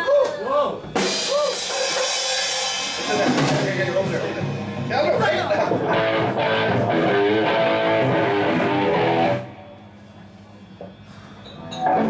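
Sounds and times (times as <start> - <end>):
drum kit: 0.8 - 9.5
crash cymbal ringing: 1.0 - 4.9.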